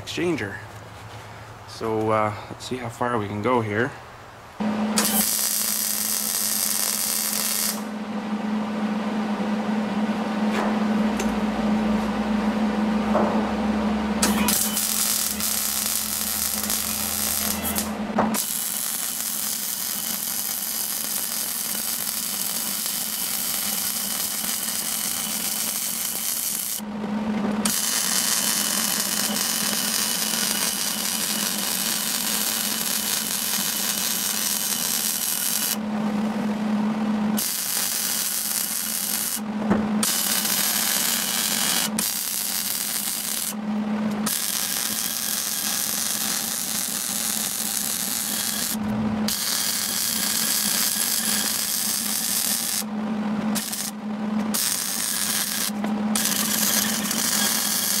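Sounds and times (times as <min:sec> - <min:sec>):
welder low steady hum: 0:04.6 - 0:58.0
welding arc crackling and sizzling: 0:05.0 - 0:08.0, 0:14.2 - 0:26.9, 0:27.6 - 0:35.8, 0:37.4 - 0:52.9, 0:53.5 - 0:58.0.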